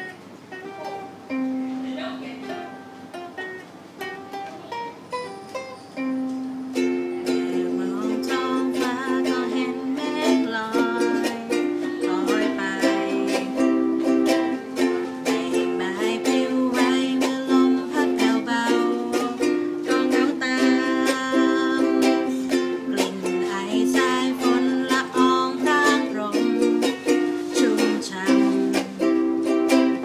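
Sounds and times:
ukuleles strumming chords: 0.0 - 30.0.

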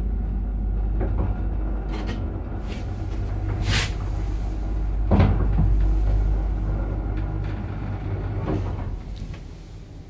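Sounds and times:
lift motor hum: 0.0 - 10.0.

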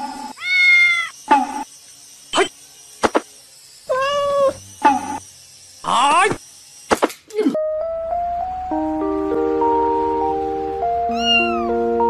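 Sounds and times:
cat meowing: 0.3 - 1.2, 3.9 - 4.6, 11.1 - 11.8.

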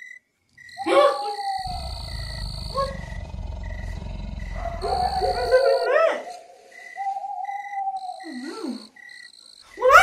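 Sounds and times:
low rumbling animal growl: 1.6 - 5.8.

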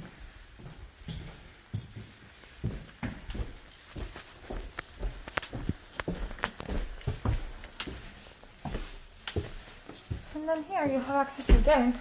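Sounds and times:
footsteps on carpeted stairs: 0.0 - 12.0.

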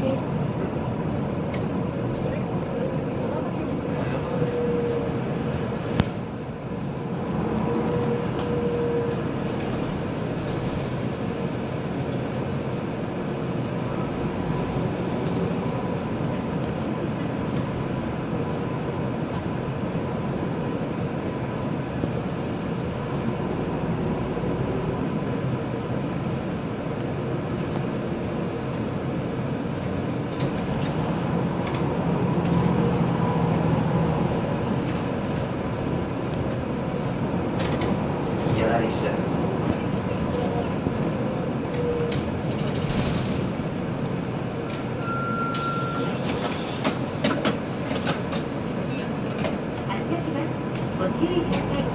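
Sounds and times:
bus engine running: 0.0 - 51.9.

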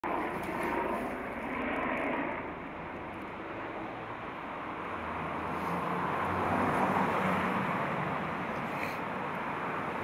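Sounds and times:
outdoor background rumble: 0.0 - 10.0.

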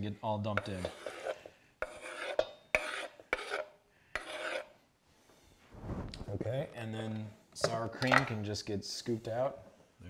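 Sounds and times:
knife scraping wooden board: 0.6 - 4.8.

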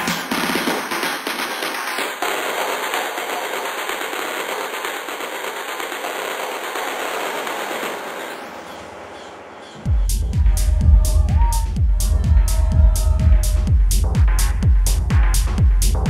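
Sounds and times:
crackling noise texture: 1.2 - 9.4.

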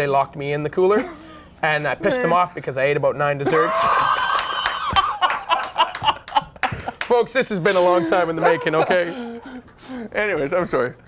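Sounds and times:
men laughing: 3.5 - 10.1.

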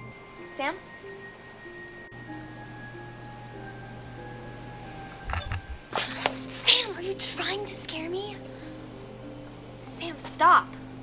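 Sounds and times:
slow chime-like melody: 0.0 - 5.3.

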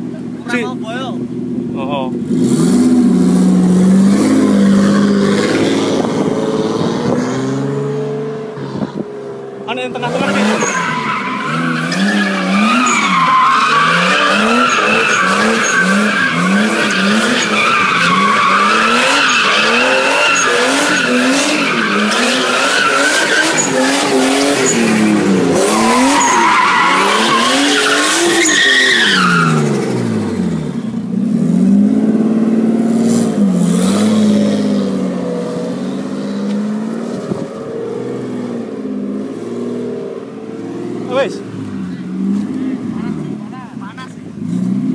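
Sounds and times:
car engine revving hard: 2.2 - 9.0, 9.8 - 44.9
tyres squealing: 9.9 - 29.7.

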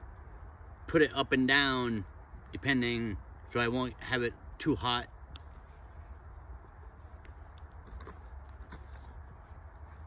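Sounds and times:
steady low rumble: 0.0 - 10.0
faint clicks: 4.8 - 6.0.

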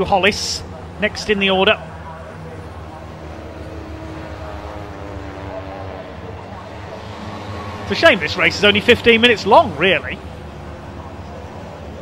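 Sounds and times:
distant racing car engines droning: 0.0 - 12.0.

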